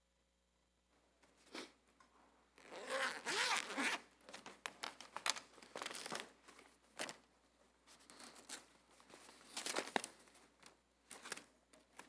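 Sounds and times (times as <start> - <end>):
zipper being drawn open: 2.6 - 4.0
book cover rustles and clicks: 4.2 - 7.2, 8.0 - 12.0.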